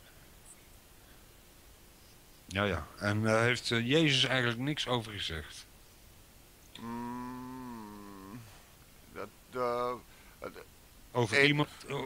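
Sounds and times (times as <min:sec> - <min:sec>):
man humming hesitantly: 0:06.8 - 0:10.7.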